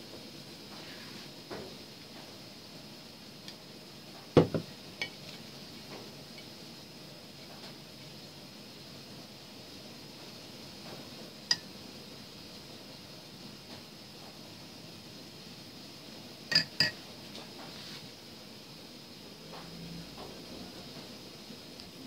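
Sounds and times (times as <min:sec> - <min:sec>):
ceramic cup knocking on table: 0:04.4 - 0:04.7
spoon clinking against ceramic: 0:16.5 - 0:17.0.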